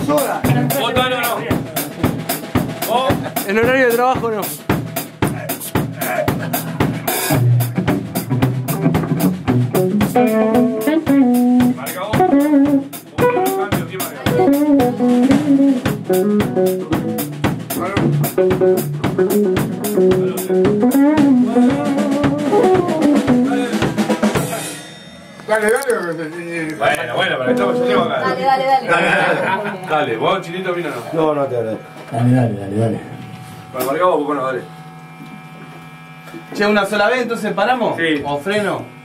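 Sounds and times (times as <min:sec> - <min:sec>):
electric guitar: 0:00.0 - 0:03.5, 0:04.4 - 0:25.9, 0:26.8 - 0:30.0
drum kit snare and bass drum: 0:00.0 - 0:25.7.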